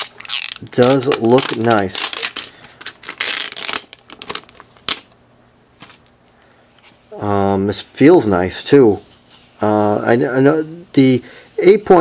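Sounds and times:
plastic film crinkling: 0.0 - 5.1
plastic film ripping off: 0.0 - 5.1.

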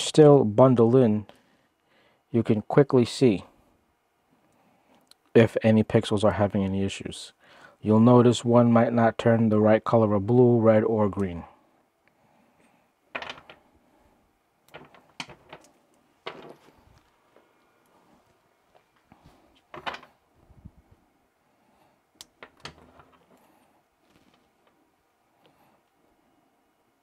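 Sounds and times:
clicks and knocks of handling: 14.7 - 17.5.

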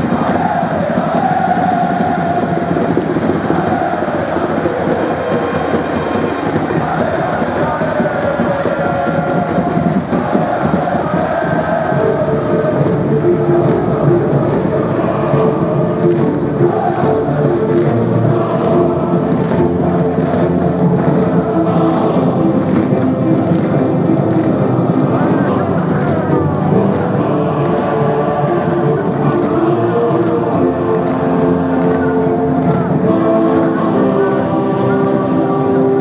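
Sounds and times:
crowd singing along: 0.0 - 36.0
music over stadium speakers: 0.0 - 36.0.

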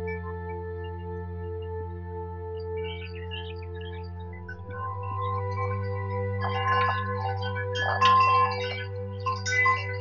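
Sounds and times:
steady low drone: 0.0 - 10.0
wind chimes tinkling: 6.4 - 10.0.

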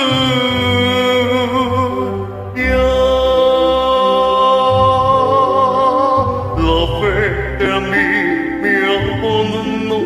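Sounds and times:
backing music: 0.0 - 10.0
man singing karaoke: 0.0 - 10.0.

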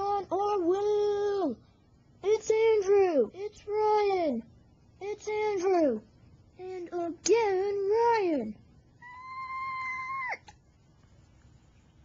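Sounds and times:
high vocal squeal: 9.0 - 10.5.

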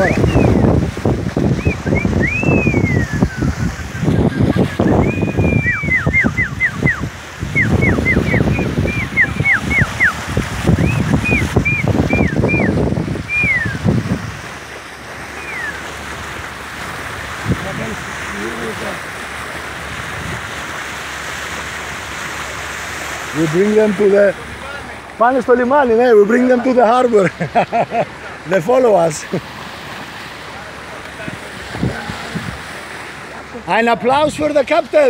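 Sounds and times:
person whistling high notes: 0.0 - 0.7, 1.6 - 3.6, 5.0 - 10.2, 10.8 - 13.8, 15.4 - 15.8
wind buffeting microphone: 0.0 - 27.4, 28.1 - 35.0
sea water splashing at bow: 0.0 - 35.0.

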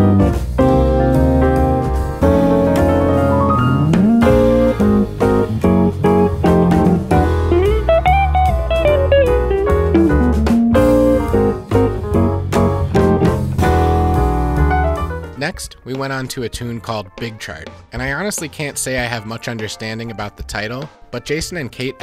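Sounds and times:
jazz band playing: 0.0 - 15.4
walking bass notes: 0.0 - 15.4.

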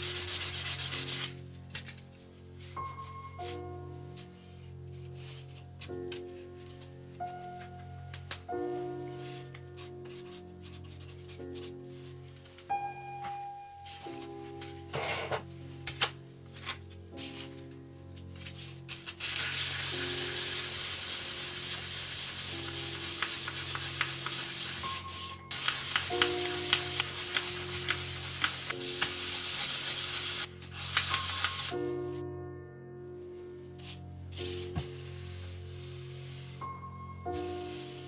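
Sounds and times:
sandpaper rubbing on wood: 0.0 - 1.4, 18.9 - 31.8.

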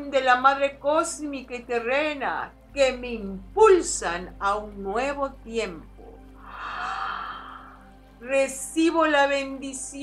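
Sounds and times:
quiet background music: 0.0 - 10.0
soft sigh-like breath: 6.4 - 8.0.

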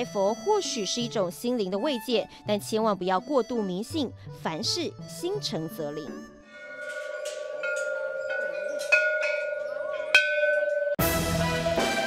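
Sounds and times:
metal temple bells ringing: 6.4 - 11.0.

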